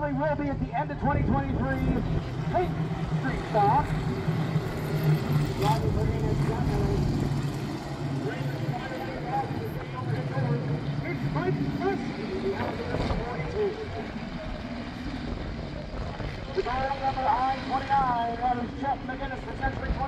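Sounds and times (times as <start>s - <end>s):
announcer talking over loudspeaker: 0.0s - 7.5s, 8.1s - 14.4s, 16.5s - 20.0s
race car engines droning: 0.0s - 20.0s.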